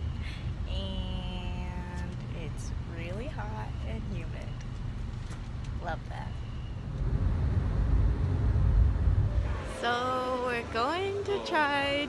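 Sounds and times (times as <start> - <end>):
road rumble inside taxi: 0.0 - 12.0.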